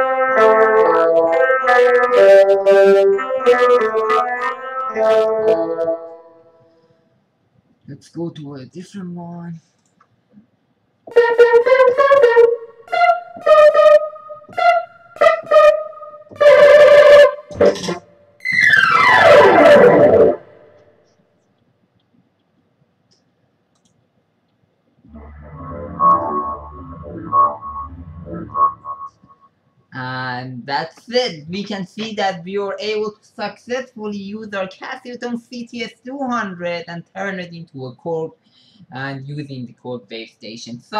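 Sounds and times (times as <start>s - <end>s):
synth chord sliding down: 0.0s - 6.2s, 11.1s - 20.6s, 25.1s - 29.3s
synthesizer stab chords: 0.0s - 6.3s, 11.1s - 20.7s, 25.1s - 29.3s
synth phrase with bass notes: 11.2s - 20.6s, 25.1s - 29.2s.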